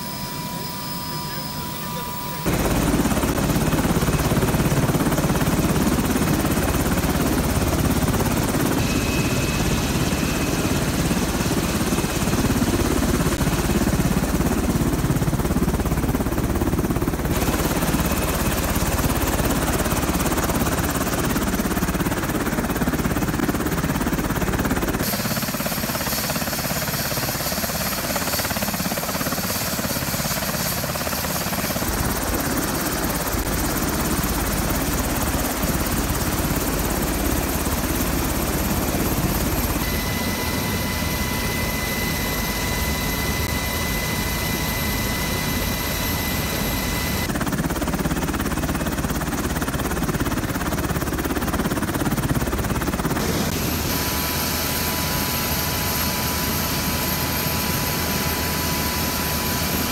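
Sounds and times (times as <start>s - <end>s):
high whine: 0.0s - 3.4s
helicopter rotor and turbine: 0.0s - 59.9s.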